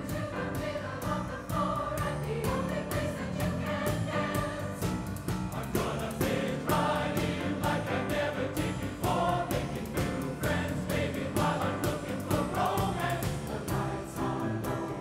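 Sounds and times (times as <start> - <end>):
band accompaniment: 0.0 - 15.0
mixed chorus singing: 0.0 - 15.0.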